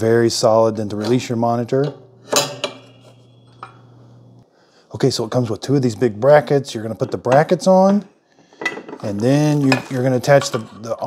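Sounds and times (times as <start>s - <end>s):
low steady hum: 0.0s - 7.6s.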